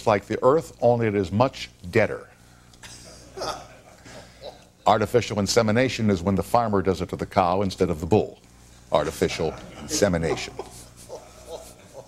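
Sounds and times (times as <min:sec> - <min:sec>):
man chuckling breathily: 0:09.7 - 0:12.0.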